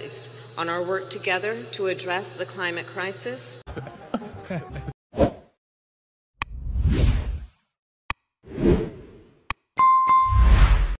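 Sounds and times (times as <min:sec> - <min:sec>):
bright bell ding: 0:09.8 - 0:10.4.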